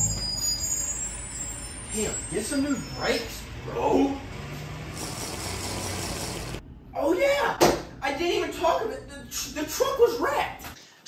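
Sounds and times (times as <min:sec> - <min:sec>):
vehicle engine running steadily: 0:03.4 - 0:06.6.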